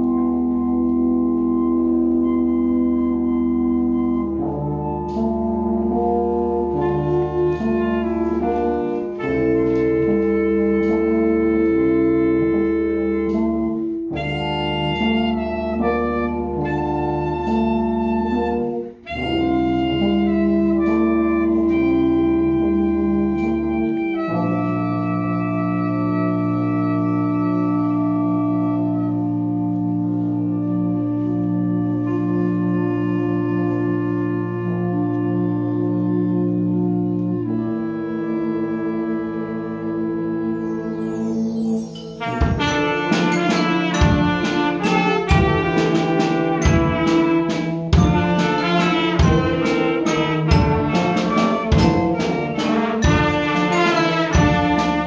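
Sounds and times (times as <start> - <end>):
concert band playing held chords: 42.2 - 55.0.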